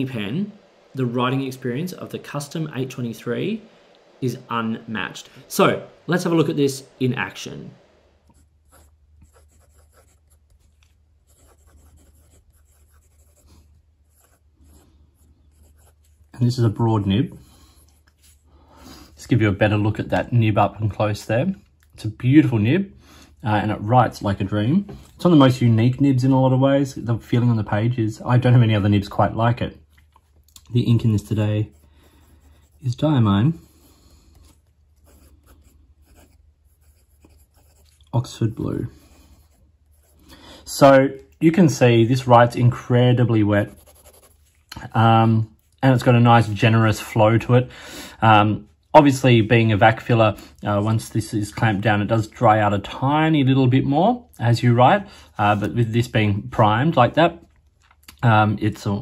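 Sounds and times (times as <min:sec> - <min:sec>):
fountain pen scratching on paper: 0:08.3 - 0:16.3, 0:34.3 - 0:38.1, 0:43.7 - 0:44.6.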